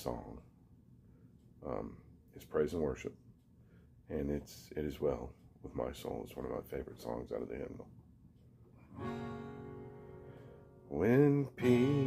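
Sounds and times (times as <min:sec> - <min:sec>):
acoustic guitar chord ringing: 0:08.8 - 0:12.0.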